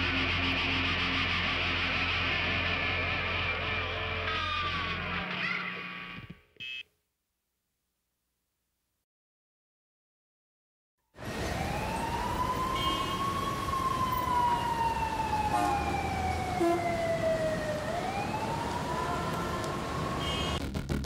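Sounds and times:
siren wailing: 11.3 - 20.6
music beat: 20.6 - 21.0.

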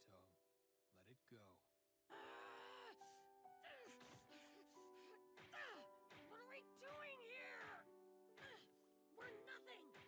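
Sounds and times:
background music: 2.1 - 10.0.

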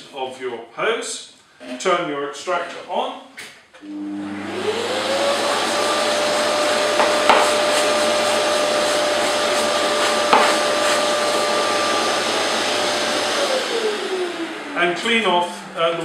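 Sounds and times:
dust extractor running: 3.9 - 16.0.

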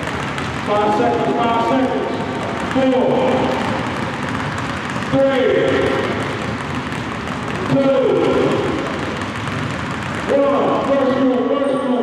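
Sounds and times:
basketballs bouncing on hardwood: 0.0 - 12.0.

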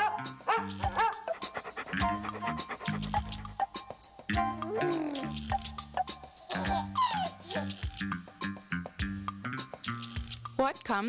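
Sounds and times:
dog barking: 0.0 - 2.2
backing music with steady beat: 0.2 - 6.5, 7.8 - 10.6.

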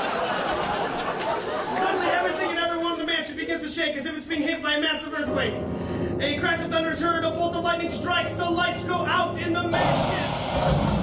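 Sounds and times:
audience laughter and chatter: 0.0 - 2.7
man speaking: 1.7 - 5.6, 6.2 - 10.4.

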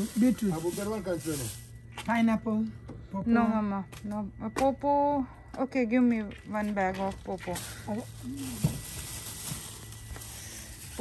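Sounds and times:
plastic bags rustling: 0.0 - 1.8, 7.2 - 11.0
low steady hum: 0.0 - 11.0.

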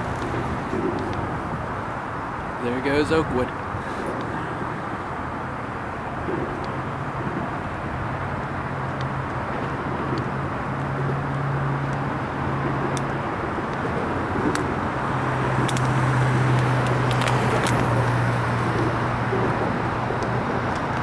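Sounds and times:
diesel locomotive engine drone: 0.0 - 21.0
freight train rumble: 0.0 - 21.0.

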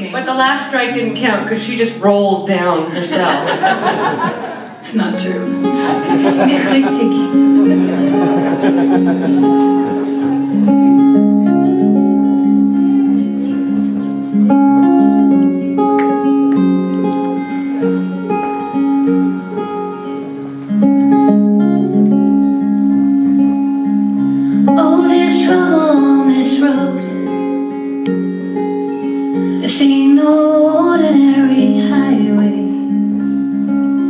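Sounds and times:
acoustic guitars playing: 0.0 - 34.0
woman singing: 24.6 - 27.8, 29.6 - 33.0.

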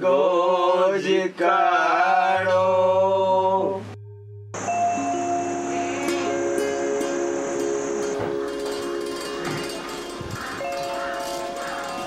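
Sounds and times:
music of long held notes: 2.4 - 12.0.

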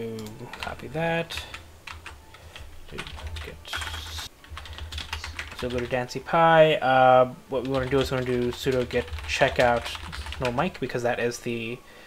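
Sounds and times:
computer keyboard typing: 0.0 - 6.0, 7.6 - 11.0.

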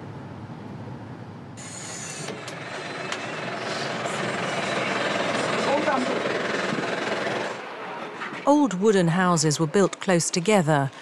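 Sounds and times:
bus engine and road noise: 0.0 - 11.0
high hiss: 1.6 - 2.5.

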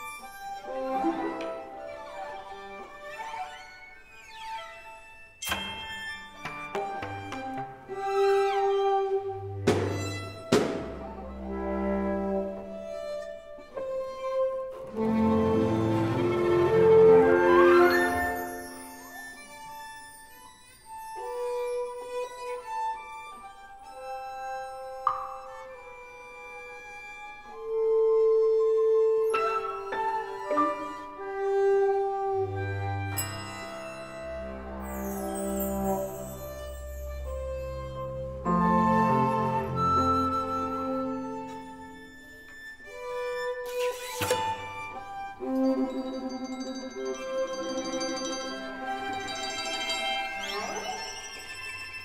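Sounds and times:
chamber ensemble playing: 0.0 - 52.0
flute and strings held notes: 0.0 - 52.0.

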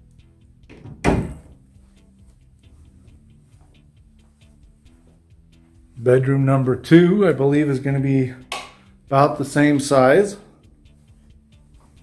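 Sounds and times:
quiet background music: 0.0 - 12.0
door scraping: 0.7 - 1.6
door thudding shut: 0.7 - 1.6.

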